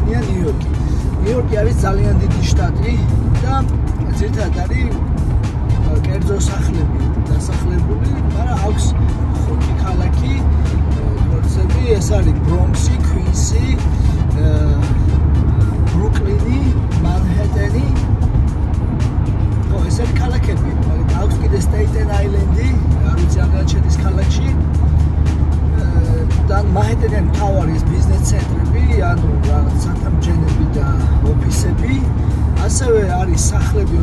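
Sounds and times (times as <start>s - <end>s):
music playing in car: 0.0s - 34.0s
road and engine rumble: 0.0s - 34.0s.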